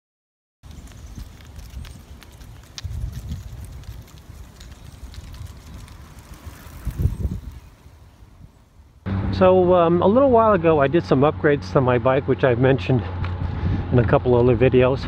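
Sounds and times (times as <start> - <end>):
wind buffeting microphone: 0.7 - 8.9, 12.8 - 15.0.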